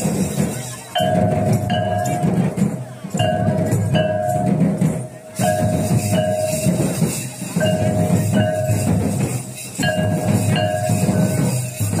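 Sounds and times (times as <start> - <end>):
drums beating fast rhythm: 0.0 - 12.0
folk dance music: 0.0 - 12.0.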